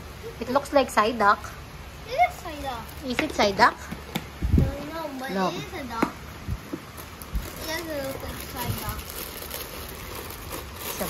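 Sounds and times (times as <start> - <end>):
plastic jar handling rustle: 6.7 - 11.0.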